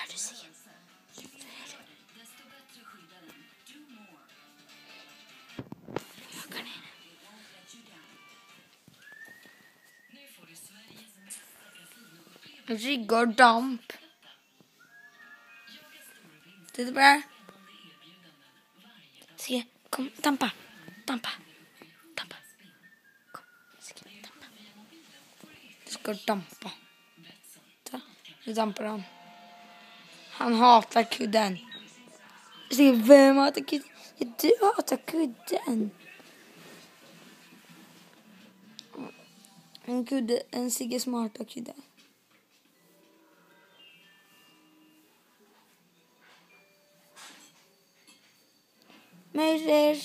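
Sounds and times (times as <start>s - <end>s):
soft whispered voice: 0.0s - 2.2s, 5.9s - 8.1s, 9.0s - 14.9s, 15.6s - 29.0s, 30.4s - 41.0s
faint background music: 0.0s - 50.0s
person whispering: 6.2s - 7.0s.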